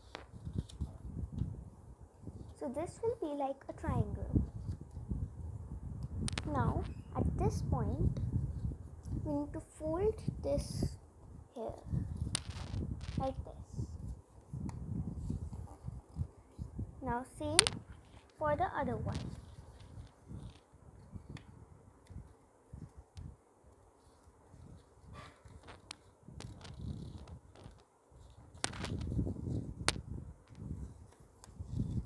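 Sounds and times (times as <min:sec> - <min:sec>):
paper rustling and rubbing: 0:12.1 - 0:13.4, 0:17.6 - 0:20.6.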